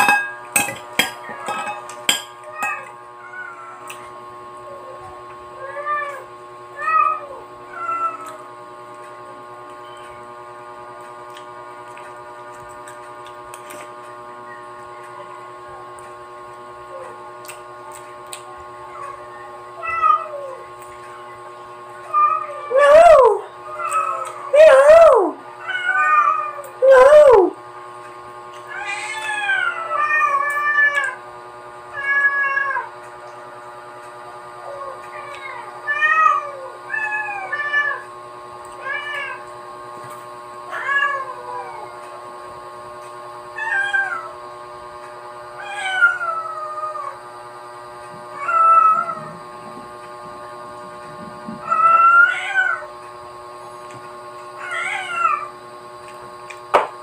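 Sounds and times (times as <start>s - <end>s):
steady hum: 0.0s - 57.0s.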